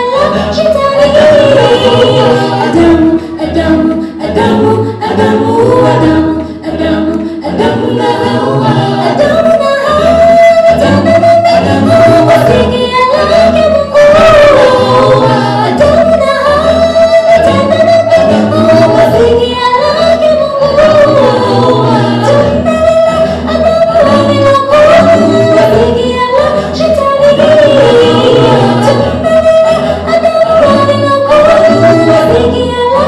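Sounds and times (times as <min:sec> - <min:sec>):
vocal group singing a cappella: 0:00.0 - 0:33.0.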